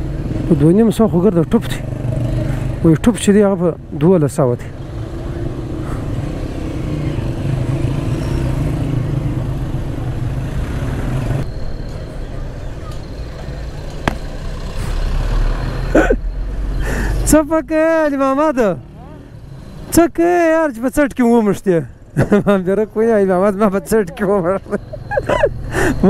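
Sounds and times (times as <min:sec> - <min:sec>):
person speaking: 0:22.6 - 0:24.7.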